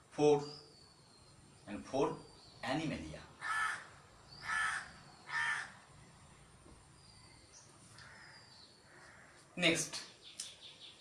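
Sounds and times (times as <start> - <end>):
crow cawing: 3.4 - 5.8, 8.0 - 9.5.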